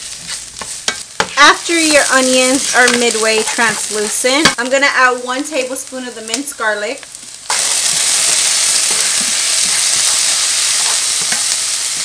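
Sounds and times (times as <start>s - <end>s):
spatula stirring in a pan: 0.0s - 1.6s
onion and garlic sizzling in oil: 0.0s - 12.0s.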